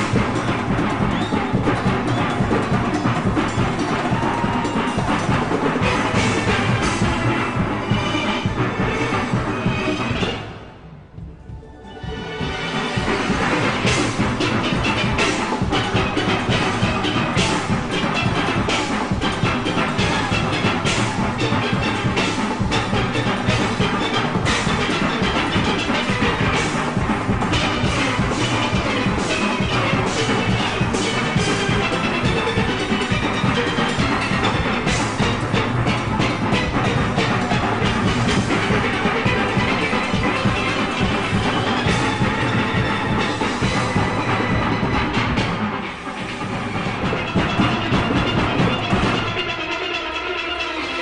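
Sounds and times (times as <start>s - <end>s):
driving percussion rhythm: 0.0s - 51.0s.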